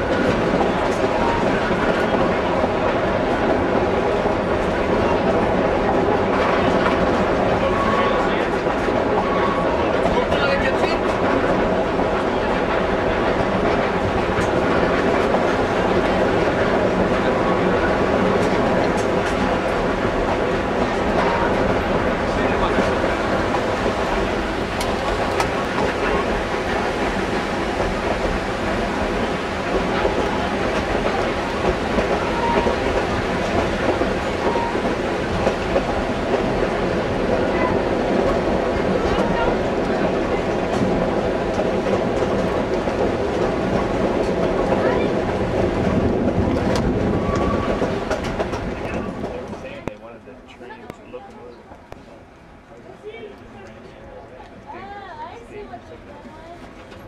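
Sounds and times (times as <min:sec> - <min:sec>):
rail joints clicking: 0:00.0 - 0:54.8
train wheels on rails: 0:00.0 - 0:57.0.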